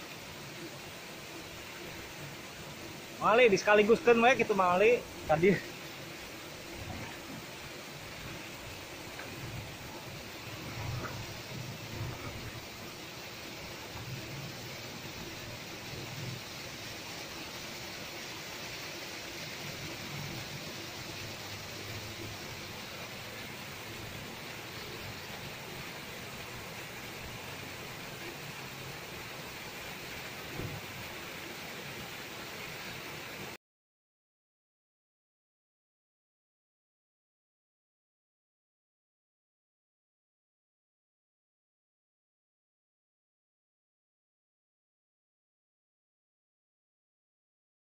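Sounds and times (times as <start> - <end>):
water pouring over wall: 3.2 - 33.3
low rumbles: 6.7 - 13.0.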